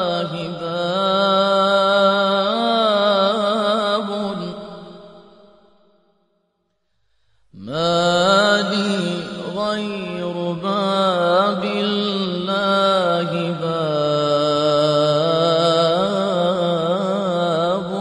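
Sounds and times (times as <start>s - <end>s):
man chanting a lament: 0.0s - 5.2s, 7.6s - 18.0s.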